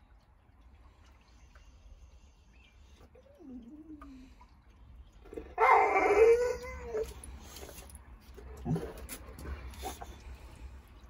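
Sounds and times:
dog howling: 5.6s - 7.1s.

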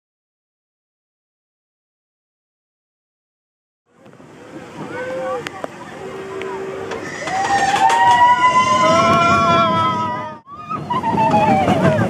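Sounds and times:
roller coaster train rumbling: 3.9s - 12.0s
riders screaming: 6.9s - 12.0s.

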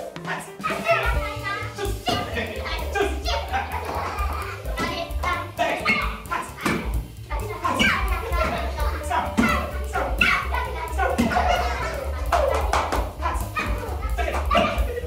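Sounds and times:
background music: 0.0s - 15.0s
children calling out and chattering: 0.4s - 15.0s.

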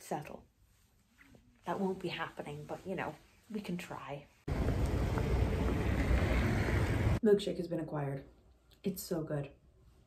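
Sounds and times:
city traffic: 4.5s - 7.2s.

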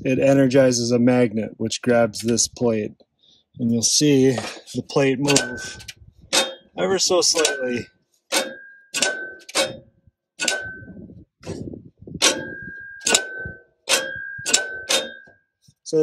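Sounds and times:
metallic clutch clicks: 5.3s - 9.8s, 10.4s - 11.6s, 12.2s - 15.3s.

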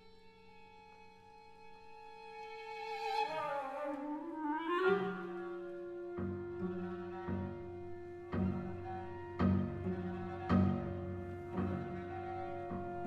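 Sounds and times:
chamber music winds and strings: 0.6s - 13.0s.

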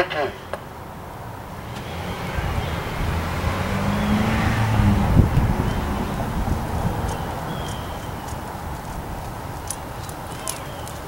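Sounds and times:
car driving past: 1.4s - 9.2s.

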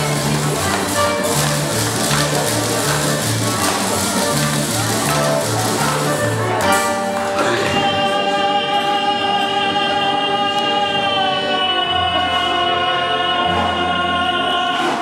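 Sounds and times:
musical accompaniment: 0.0s - 15.0s
singer holding long note: 7.2s - 15.0s.

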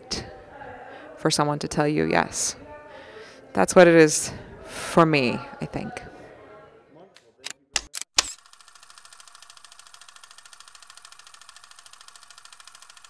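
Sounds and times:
sharp clicks: 7.4s - 13.0s
rapid mechanical clatter: 8.3s - 13.0s.

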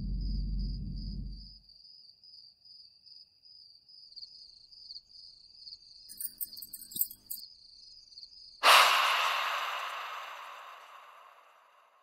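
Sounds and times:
cricket chirping: 0.0s - 12.0s
rattle of clicks and knocks: 6.1s - 7.4s.

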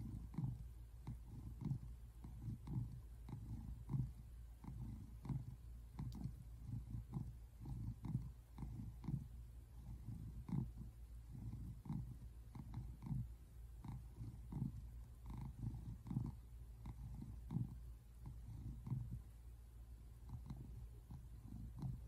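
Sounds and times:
cat purring: 0.0s - 22.0s.

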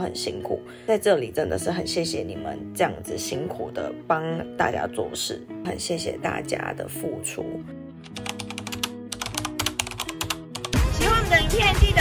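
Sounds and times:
music with a voice: 0.0s - 12.0s
soft background music: 0.0s - 12.0s
keyboard typing clicks: 8.1s - 10.8s.

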